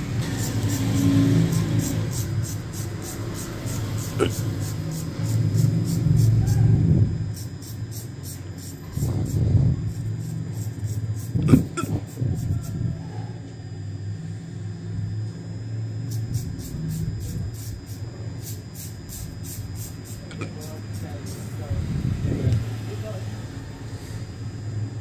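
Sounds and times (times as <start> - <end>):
steady low hum: 0.0 - 25.0
razor scraping hair off scalp: 0.2 - 6.7, 7.3 - 12.8, 16.1 - 21.7.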